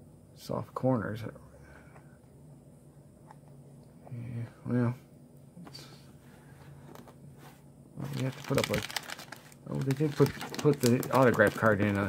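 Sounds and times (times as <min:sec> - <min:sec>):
handling of a trading card: 0:06.9 - 0:12.0.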